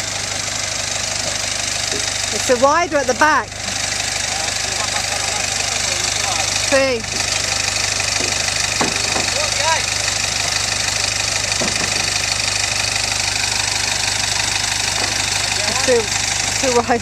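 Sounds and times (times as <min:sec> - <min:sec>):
vehicle engine running at low speed: 0:00.0 - 0:17.0.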